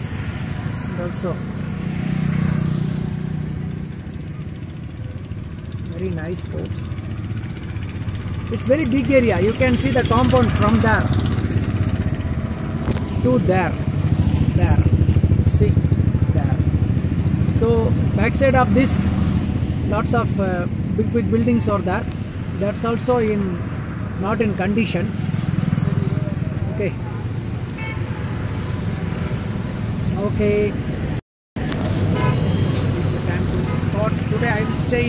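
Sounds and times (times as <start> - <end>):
motor scooters passing: 0.0 - 35.0
road and wind noise: 0.0 - 35.0
vehicle engine rumble: 0.0 - 35.0
high horn beep: 32.0 - 32.9.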